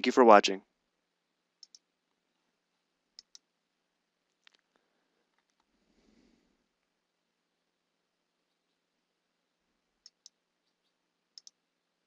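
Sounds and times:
computer mouse clicking: 1.6 - 1.9, 3.2 - 3.5, 10.0 - 10.4, 11.3 - 11.6.

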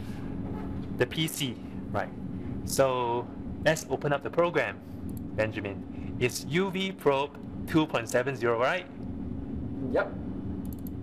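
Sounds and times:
lab equipment humming: 0.0 - 11.0.

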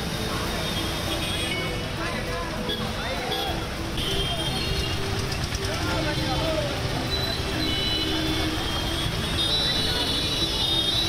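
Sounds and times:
vehicle engines: 0.0 - 11.0.

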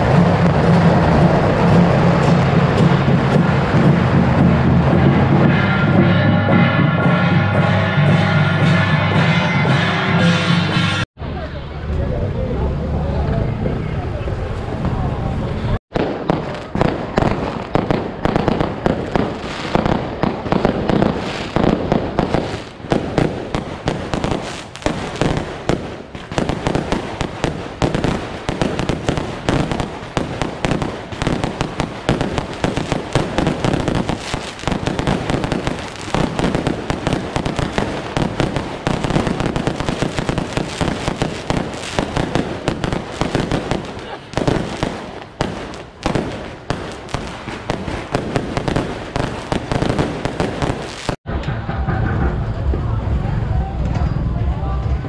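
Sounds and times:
firecrackers crackling: 0.0 - 11.1, 15.9 - 52.9.

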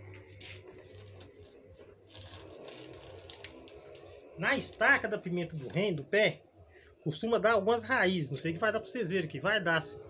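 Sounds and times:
low steady hum: 0.0 - 10.0
plastic bag of soil rustling: 0.3 - 6.3.

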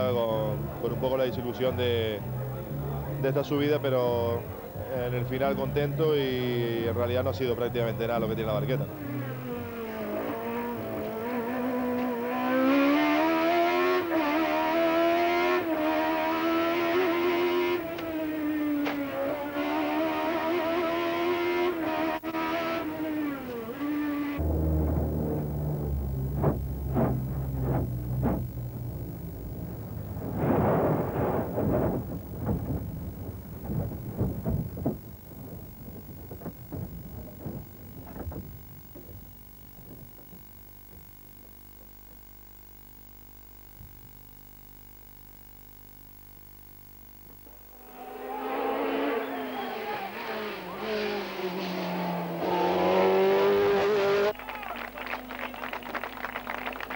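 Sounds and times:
racing engine revving: 0.0 - 39.2, 47.7 - 54.4
music with deep bass and knocks: 24.4 - 41.9.

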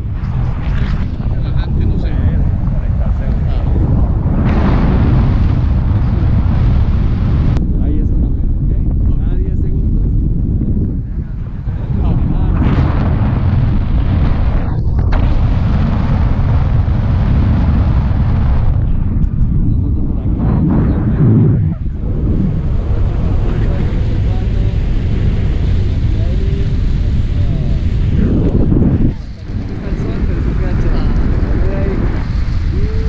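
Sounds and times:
wind buffeting microphone: 0.0 - 33.0.

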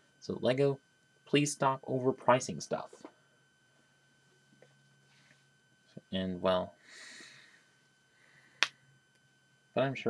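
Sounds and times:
soft breath: 6.8 - 8.6.

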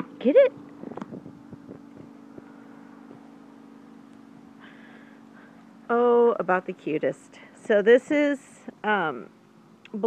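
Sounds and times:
faint machine hum: 0.0 - 10.0.

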